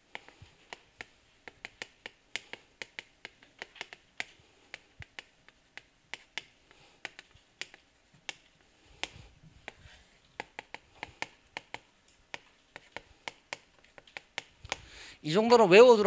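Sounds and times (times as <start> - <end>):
chalk writing on chalkboard: 0.0 - 14.8.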